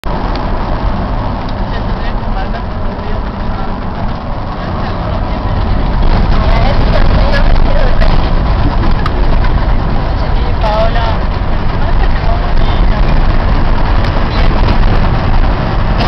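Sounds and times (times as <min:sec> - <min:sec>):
car road and engine rumble: 0:00.0 - 0:16.0
faint voices: 0:01.6 - 0:16.0.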